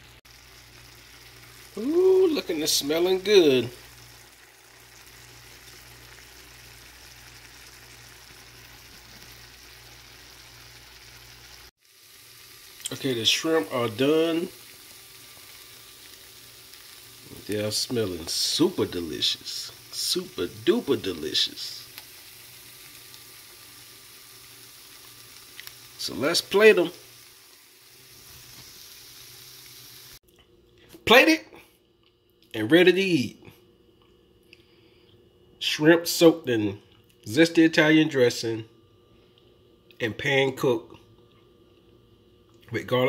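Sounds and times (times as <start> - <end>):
shrimp sizzling in a pan: 0.0 - 30.2.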